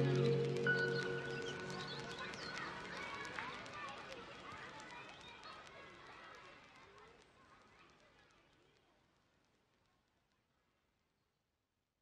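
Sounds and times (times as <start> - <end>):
small clicks and chirps: 0.0 - 10.2.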